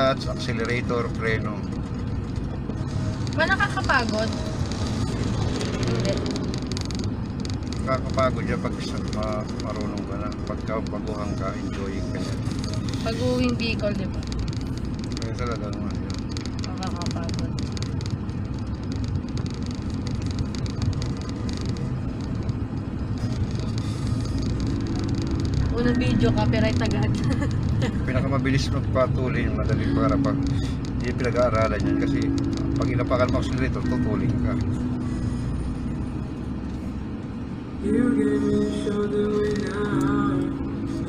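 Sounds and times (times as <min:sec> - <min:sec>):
car engine: 0:00.0 - 0:41.0
road noise: 0:00.0 - 0:41.0.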